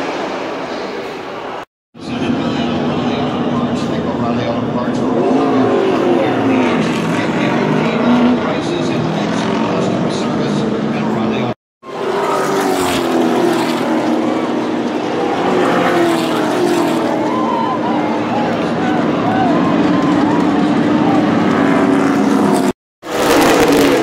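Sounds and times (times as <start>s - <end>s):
crowd voices: 0.0s - 22.7s
race car engines passing: 0.0s - 24.0s.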